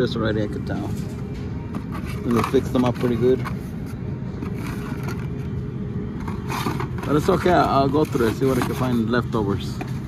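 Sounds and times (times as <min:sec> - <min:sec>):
blister packs scraping cardboard: 0:06.3 - 0:09.2.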